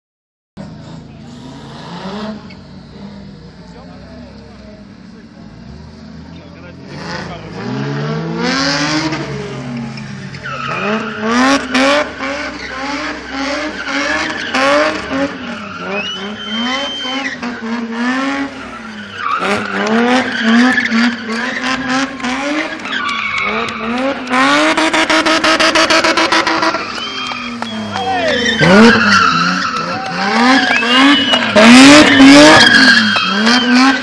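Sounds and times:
car engine revving: 0.6s - 34.0s
tyres squealing on tarmac: 9.7s - 34.0s.

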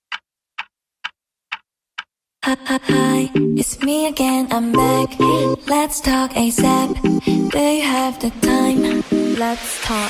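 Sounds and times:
clock ticking: 0.0s - 2.2s, 2.8s - 7.7s
music track: 2.5s - 10.0s.

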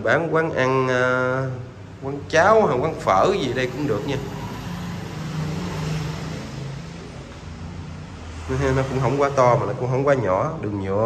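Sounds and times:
vehicle passing: 0.0s - 11.0s.

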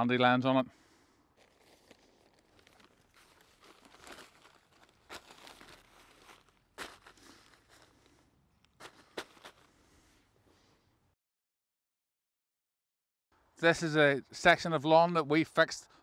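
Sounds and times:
plastic sheeting crinkling: 1.4s - 8.2s.

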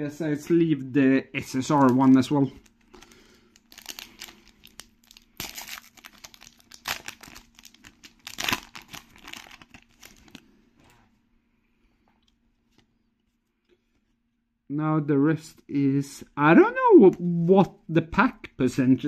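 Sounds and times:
plastic wrapper tearing and crinkling: 1.6s - 10.4s.

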